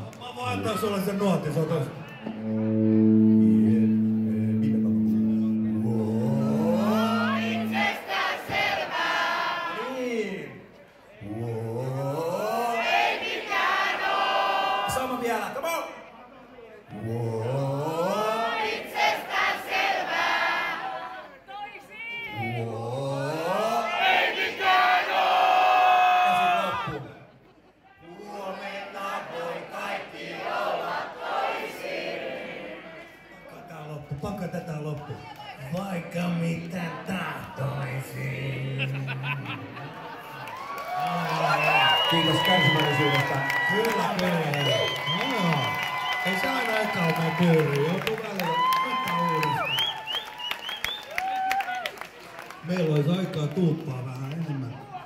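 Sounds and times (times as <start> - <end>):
crowd noise: 0.0 - 51.2, 51.9 - 55.0
amplified instrument low drone: 2.3 - 8.0.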